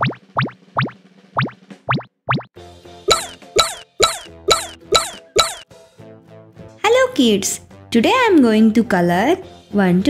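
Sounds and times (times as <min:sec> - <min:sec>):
cartoon bloop pops: 0:00.0 - 0:02.5, 0:03.1 - 0:05.6.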